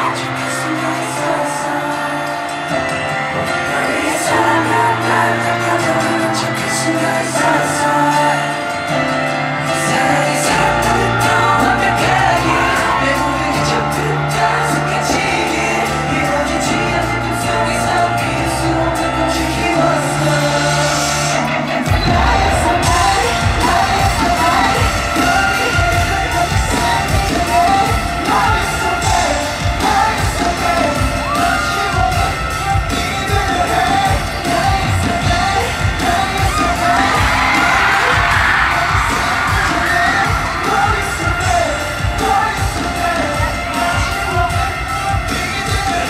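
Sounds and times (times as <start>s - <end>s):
crowd cheering: 0.0s - 46.0s
pop music over sound system: 0.0s - 46.0s.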